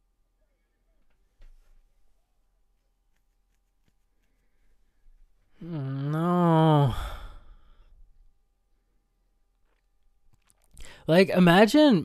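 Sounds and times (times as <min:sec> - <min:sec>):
man sighing: 0:05.5 - 0:07.9.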